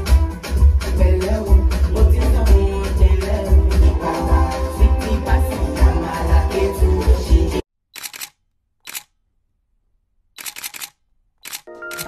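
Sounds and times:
camera shutter clicks: 8.0s - 9.1s, 10.4s - 12.0s.

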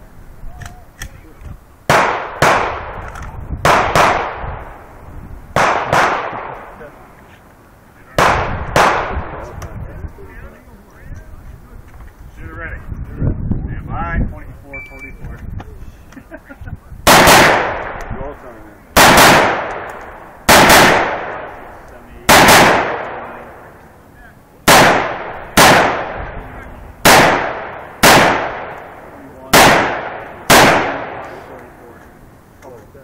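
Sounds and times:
rifle shots with echo: 1.9s - 4.9s, 5.5s - 6.9s, 8.1s - 9.5s, 17.0s - 18.1s, 19.0s - 23.8s, 24.6s - 31.6s.

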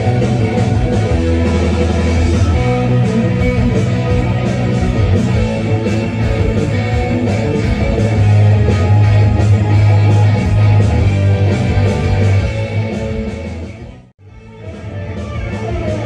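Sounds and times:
electric guitar rock instrumental: 0.0s - 16.0s.

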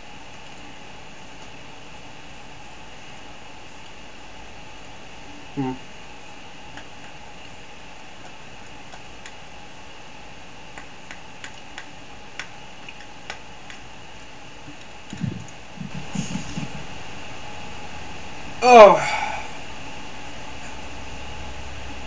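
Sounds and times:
steady background hum: 0.0s - 22.0s
short low vocal sounds: 5.5s - 5.9s, 18.6s - 19.5s.

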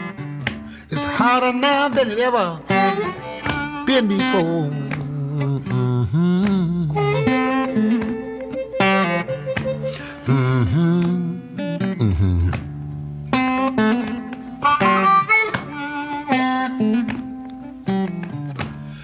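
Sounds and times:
acoustic guitar: 0.0s - 19.0s
blues harmonica playing: 0.0s - 19.0s.

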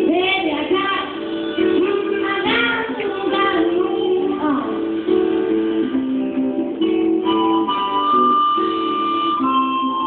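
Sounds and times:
blues harmonica solo: 6.7s - 10.0s.

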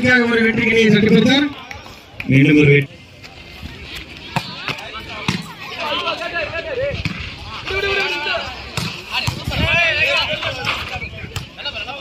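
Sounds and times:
people shouting and calling: 4.2s - 12.0s.

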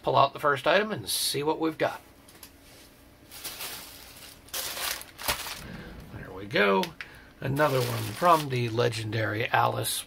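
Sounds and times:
packaging crinkling and rustling: 3.2s - 5.7s, 6.8s - 8.9s.

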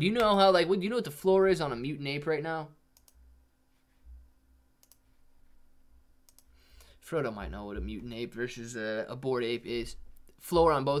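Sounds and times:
faint computer mouse clicks: 3.0s - 3.2s, 4.8s - 5.1s, 6.3s - 6.9s.

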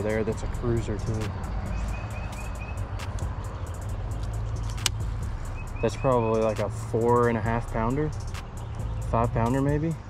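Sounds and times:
bird chirping: 0.0s - 10.0s
low outdoor rumble: 0.0s - 10.0s
sharp click: 4.2s - 5.0s.

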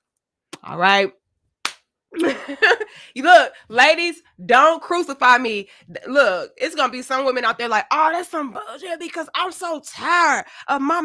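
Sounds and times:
hand smack: 1.6s - 1.9s
woman laughing: 2.2s - 3.1s.

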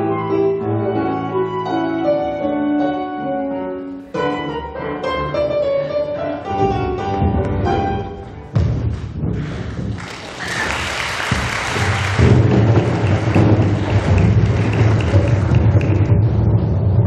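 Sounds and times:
audience applause: 9.9s - 16.1s.

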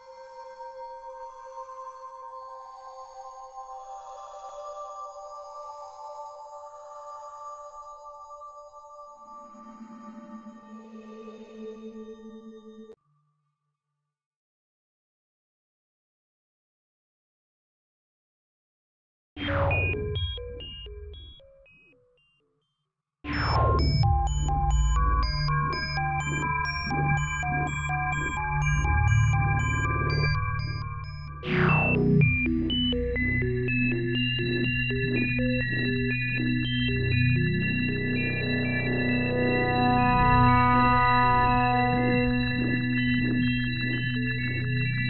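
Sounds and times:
ambient synthesizer tones: 23.6s - 45.0s
low synth buzz: 37.1s - 44.2s
fast falling synth sweep: 37.4s - 42.6s.

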